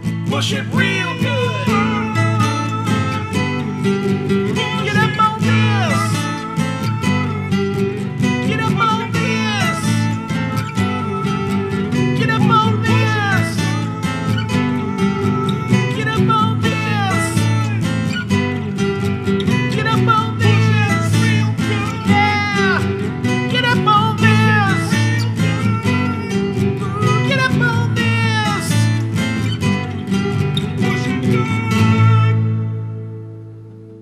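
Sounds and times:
acoustic guitar strumming: 0:00.0 - 0:34.0.

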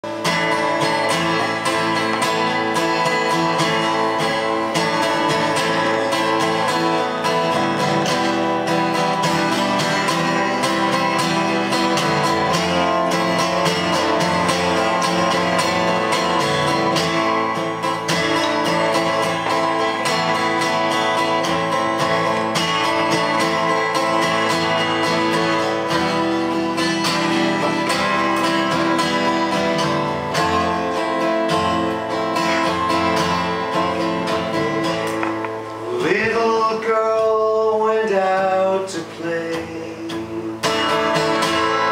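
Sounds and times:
acoustic guitar strummed: 0:00.0 - 0:41.9.

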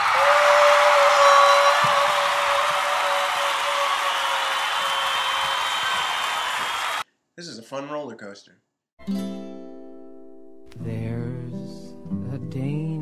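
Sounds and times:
high held scream: 0:00.0 - 0:07.0.

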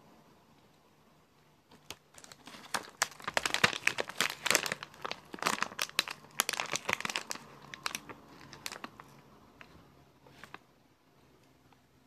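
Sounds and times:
packaging crinkling: 0:01.7 - 0:09.2.

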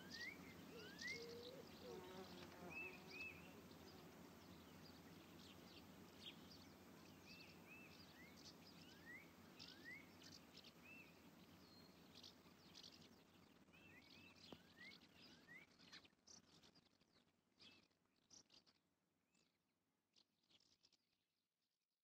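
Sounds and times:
faint birds chirping: 0:00.0 - 0:21.0.

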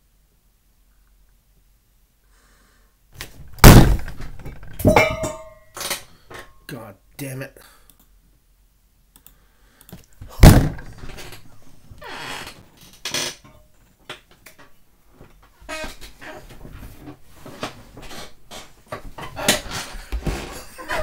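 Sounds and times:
knocks and rustles: 0:03.2 - 0:06.6, 0:10.2 - 0:21.0
loud thump: 0:03.4 - 0:05.5, 0:10.3 - 0:11.1.

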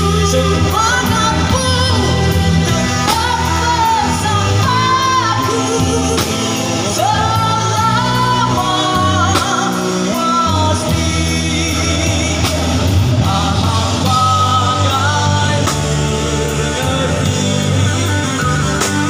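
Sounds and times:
person singing: 0:00.0 - 0:19.0
rock band playing: 0:00.0 - 0:19.0.

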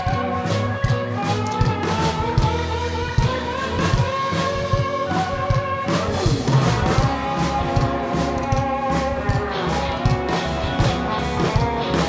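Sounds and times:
bass guitar: 0:00.0 - 0:12.0
electric guitars sustained notes: 0:00.0 - 0:12.0
steady drum beat: 0:00.0 - 0:12.0.

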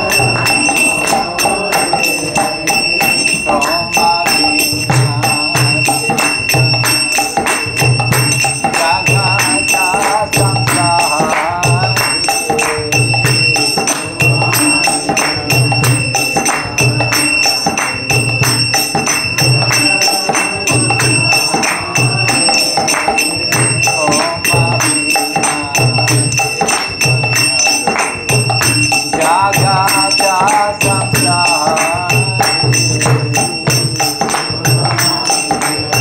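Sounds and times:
hand cymbals clashing: 0:00.0 - 0:36.0
voices singing: 0:00.0 - 0:36.0.

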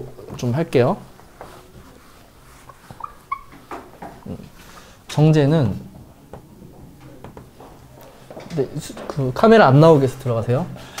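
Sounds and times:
faint rubbing: 0:00.4 - 0:05.0
eraser squeaking on whiteboard: 0:02.5 - 0:03.9.

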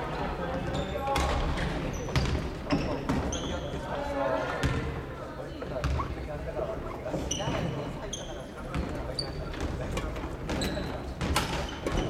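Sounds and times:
murmur of voices: 0:00.0 - 0:12.0
shoes squeaking on wooden floor: 0:10.5 - 0:12.0.

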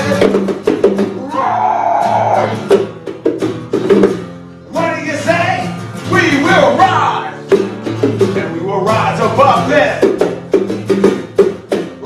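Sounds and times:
hand drum strikes: 0:00.0 - 0:01.3, 0:02.6 - 0:04.3, 0:10.0 - 0:12.0
acoustic guitars strumming: 0:00.0 - 0:12.0.

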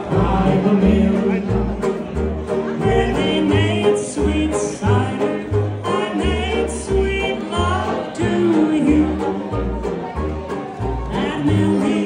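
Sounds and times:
banjo: 0:00.0 - 0:12.0
lead melody bending in pitch: 0:00.0 - 0:12.0
thumping bass line: 0:00.0 - 0:12.0.

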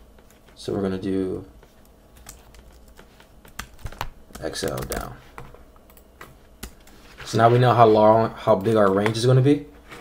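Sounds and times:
computer keyboard keys clicking: 0:02.2 - 0:05.1.

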